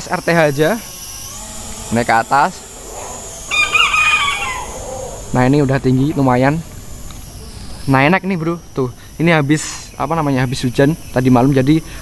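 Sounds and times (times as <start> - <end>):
rooster crowing: 2.5 - 7.0.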